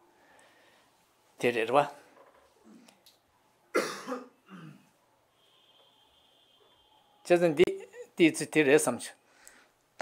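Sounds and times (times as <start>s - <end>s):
faint throat sound: 3.7s - 5.0s
man coughing: 3.8s - 4.9s.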